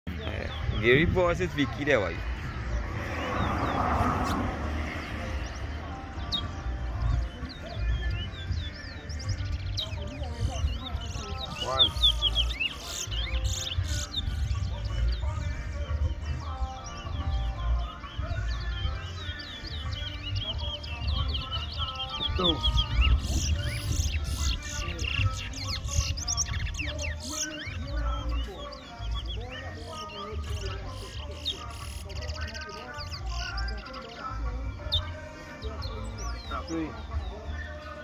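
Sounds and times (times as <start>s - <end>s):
finches singing: 0.1s - 38.0s.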